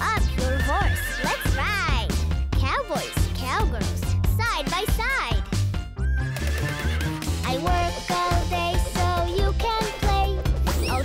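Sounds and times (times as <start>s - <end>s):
upbeat children's music: 0.0s - 11.0s
cartoon horse whinny: 0.4s - 1.5s.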